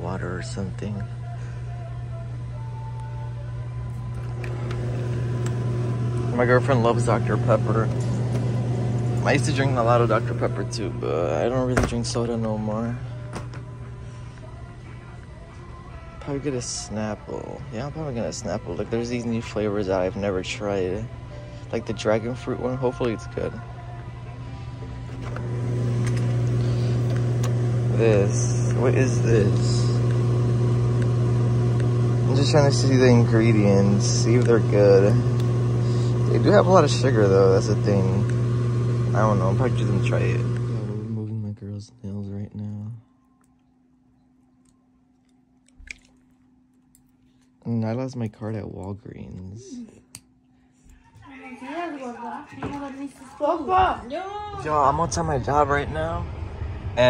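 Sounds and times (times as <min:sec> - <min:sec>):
drink cooler hum: 0:00.0 - 0:57.0.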